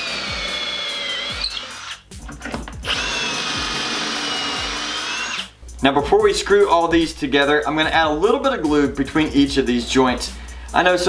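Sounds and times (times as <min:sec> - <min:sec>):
cordless drill whining: 0:00.0 - 0:05.6.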